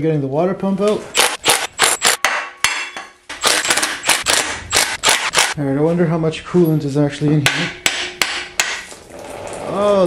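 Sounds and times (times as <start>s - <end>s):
impact driver hammering bolts: 1.1s - 5.6s.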